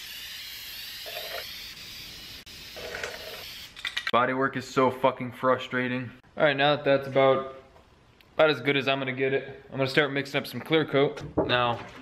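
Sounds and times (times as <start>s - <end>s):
spray paint can hissing: 0.0s - 4.1s.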